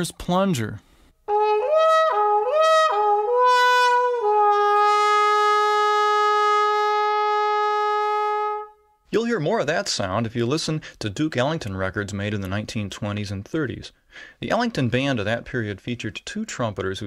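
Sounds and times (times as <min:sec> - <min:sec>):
muted trumpet playing: 0:01.3 - 0:08.8.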